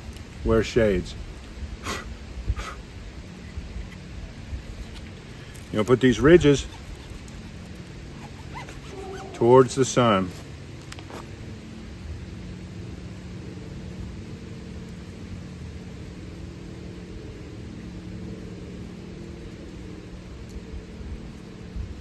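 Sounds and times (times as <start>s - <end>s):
light hiss: 0.0s - 22.0s
low mechanical hum: 0.0s - 22.0s.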